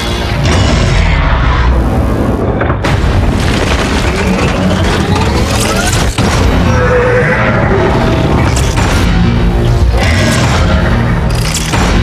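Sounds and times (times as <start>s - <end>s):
film score music: 0.0s - 12.0s
debris crashing: 2.6s - 6.7s.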